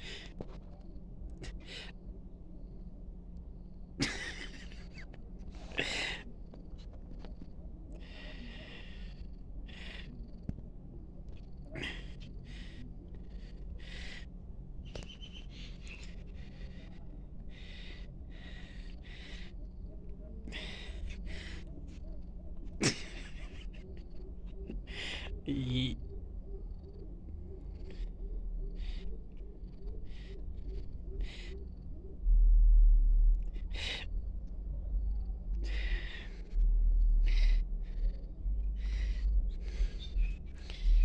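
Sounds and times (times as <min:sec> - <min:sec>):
steady low rumble: 0:00.0 - 0:41.0
low microphone rumble: 0:23.3 - 0:41.0.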